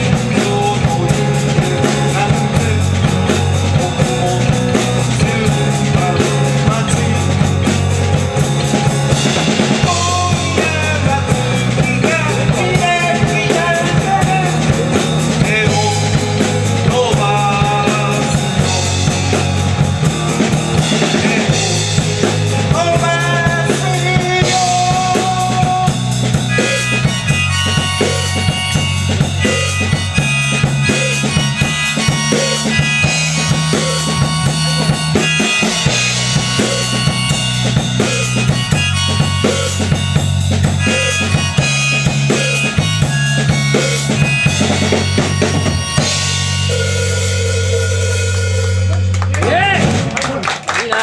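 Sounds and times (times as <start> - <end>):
harmonica melody: 0.0 - 49.1
electric bass line: 0.0 - 50.5
drum kit: 0.0 - 51.0
audience clapping: 48.9 - 51.0.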